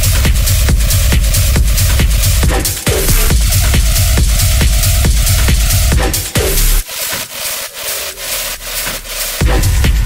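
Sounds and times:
hissy hi-hat and percussion: 0.0s - 10.0s.

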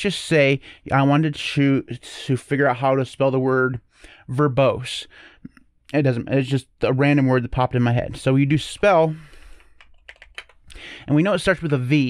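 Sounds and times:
computer keyboard typing: 9.8s - 10.6s.

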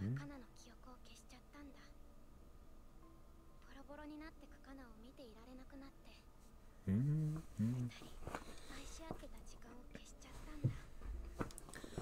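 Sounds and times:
faint soft speech: 3.7s - 10.9s.

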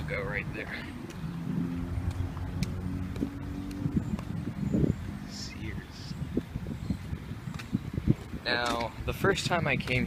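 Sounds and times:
car engine humming: 0.0s - 8.1s.

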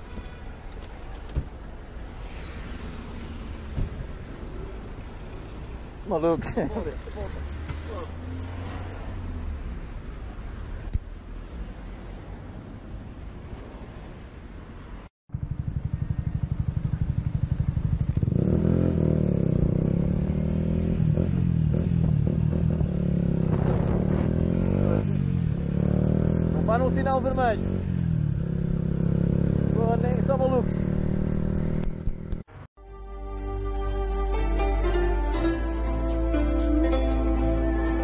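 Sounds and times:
motorcycle engine: 1.7s - 9.8s, 15.3s - 32.7s.

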